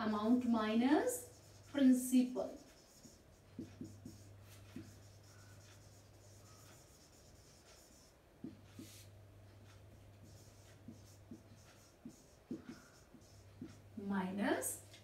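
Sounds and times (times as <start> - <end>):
steady low hum: 0.0 - 15.0
marker scratching on whiteboard: 1.0 - 13.9.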